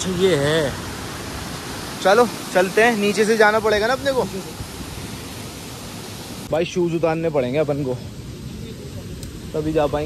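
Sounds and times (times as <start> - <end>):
waterfall rushing: 0.0 - 9.0.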